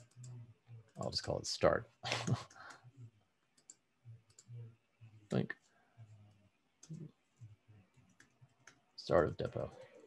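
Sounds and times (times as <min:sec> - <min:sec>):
faint keyboard clicks: 0:03.5 - 0:04.5.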